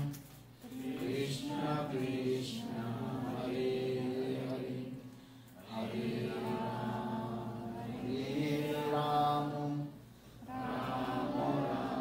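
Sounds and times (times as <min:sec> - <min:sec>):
voices chanting prayers: 0:00.0 - 0:12.0.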